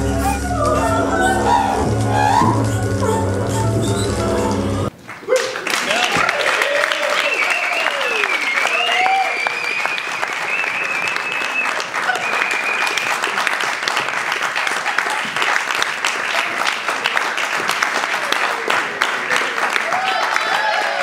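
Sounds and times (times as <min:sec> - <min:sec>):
whoops: 0:00.0 - 0:04.6, 0:05.3 - 0:13.1, 0:19.9 - 0:21.0
high whistling: 0:00.0 - 0:04.9, 0:07.2 - 0:13.2
audience clapping: 0:04.4 - 0:21.0.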